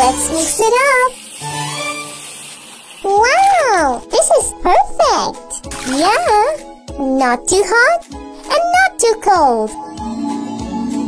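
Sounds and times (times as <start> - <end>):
tap water running into bathtub: 0.0 - 6.6
soft background music: 0.0 - 11.0.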